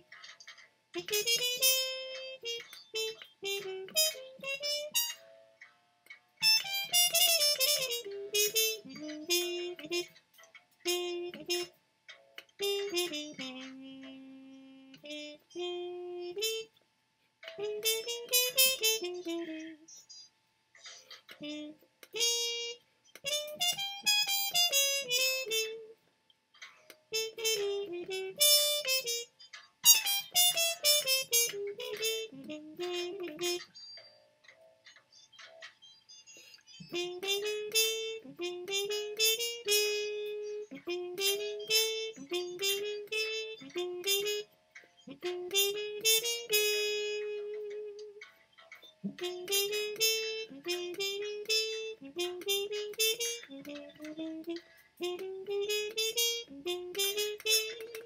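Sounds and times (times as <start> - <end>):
trumpet playing jazz: 0.0 - 5.5, 6.4 - 16.8, 17.4 - 20.0, 21.3 - 26.0, 26.9 - 33.8, 36.8 - 58.0.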